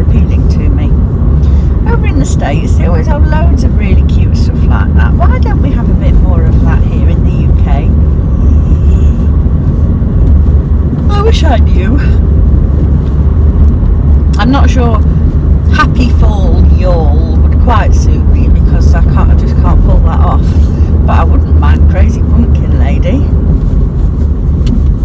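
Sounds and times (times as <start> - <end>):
woman talking: 0.0 - 1.0, 1.8 - 9.2, 11.0 - 12.2, 14.4 - 15.1, 15.7 - 23.3
car engine and road noise: 0.0 - 25.0.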